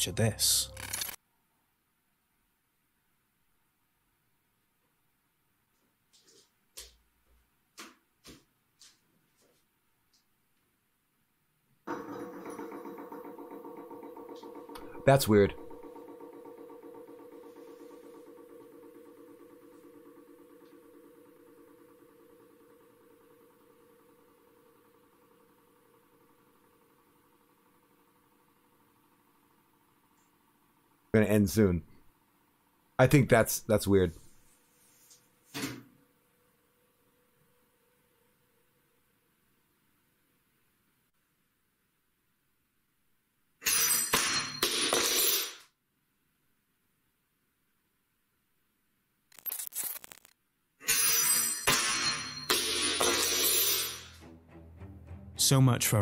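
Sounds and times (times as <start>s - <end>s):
low steady hum: 0.0s - 4.2s.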